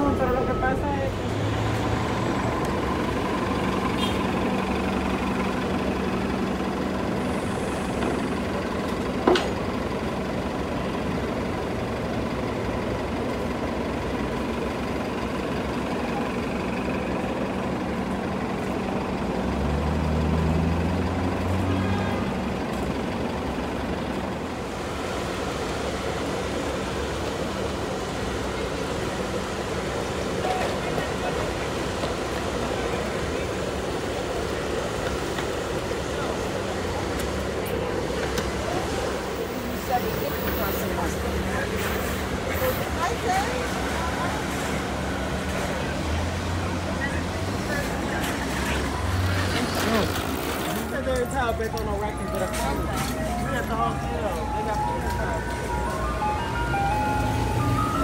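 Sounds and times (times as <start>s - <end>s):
bus engine running: 0.0s - 58.0s
street traffic: 0.0s - 58.0s.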